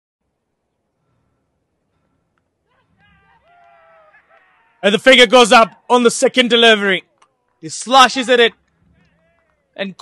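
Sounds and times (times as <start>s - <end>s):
distant shouts of fielders appealing: 1.0s - 6.0s, 7.1s - 9.8s.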